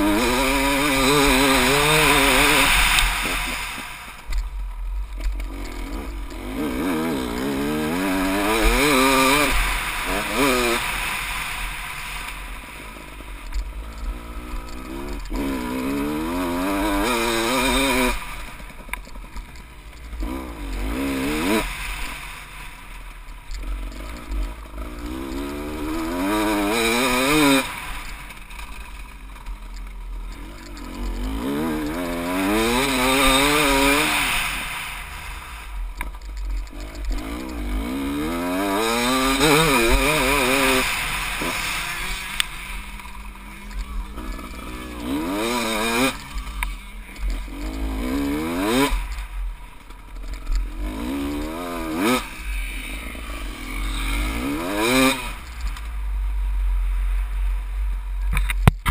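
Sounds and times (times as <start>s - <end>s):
motorcycle engine revving: 0.0s - 58.9s.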